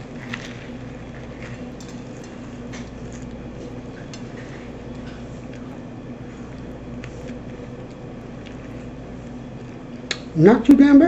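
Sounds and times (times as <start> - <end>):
person chewing crunchy food: 0.0 - 10.2
steady low hum: 0.0 - 11.0.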